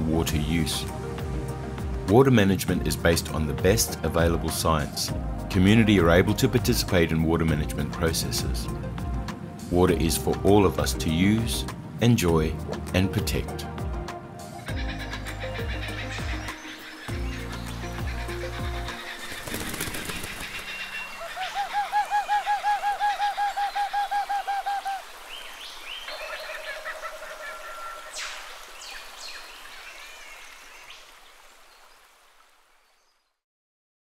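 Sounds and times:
background music: 0:00.0 - 0:24.0
rapid repeated bird call notes: 0:14.6 - 0:29.9.

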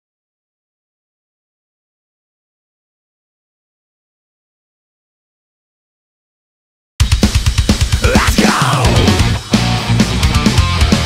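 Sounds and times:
death metal music: 0:07.1 - 0:11.0
low bass notes: 0:07.8 - 0:11.0.

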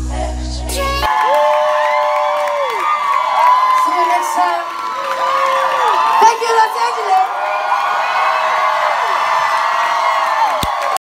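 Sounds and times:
crowd cheering and whooping: 0:01.0 - 0:11.0.

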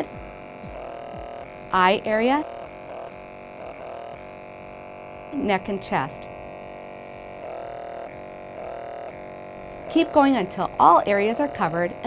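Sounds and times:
skin exfoliator humming: 0:00.0 - 0:12.0.

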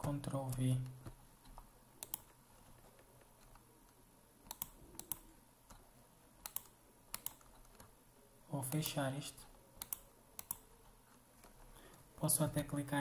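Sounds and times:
computer mouse clicks: 0:00.0 - 0:08.0, 0:08.7 - 0:09.0, 0:09.8 - 0:12.0.

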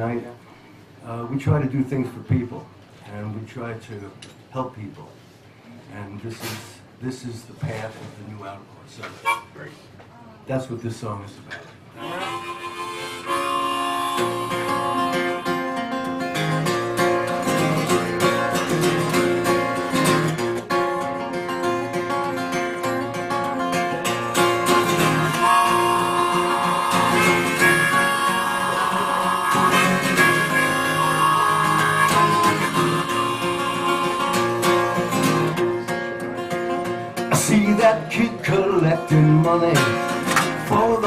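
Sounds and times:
acoustic guitars strumming: 0:12.0 - 0:41.0
held melody line: 0:12.0 - 0:41.0.

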